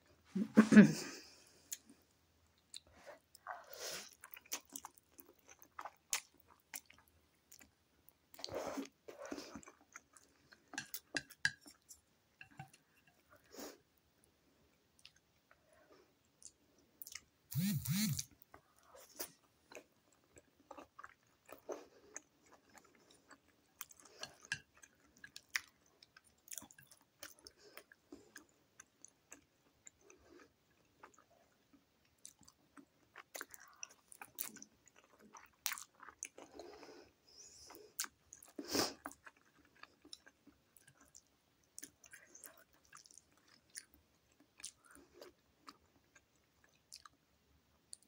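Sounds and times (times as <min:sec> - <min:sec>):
chewing mouth sounds: 0:37.9 - 0:47.2.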